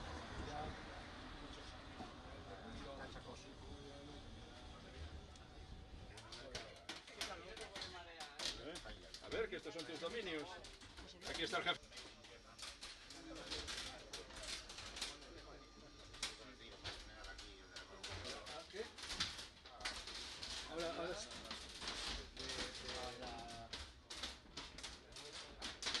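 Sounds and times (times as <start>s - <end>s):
faint voices talking: 0.0s - 26.0s.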